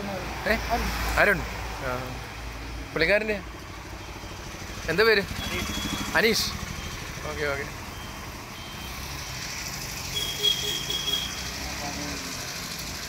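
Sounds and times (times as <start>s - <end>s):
vehicle engine rumbling: 0.0s - 13.0s.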